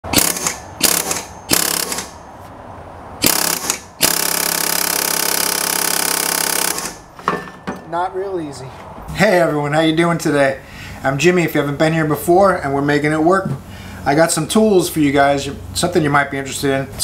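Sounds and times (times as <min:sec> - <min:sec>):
pneumatic air hammer bursts: 0:00.0 - 0:02.2, 0:03.2 - 0:07.2.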